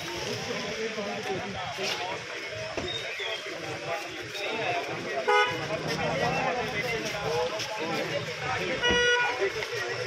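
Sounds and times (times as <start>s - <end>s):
crowd voices: 0.0s - 10.0s
car horn toot: 5.3s - 5.6s, 8.8s - 9.4s.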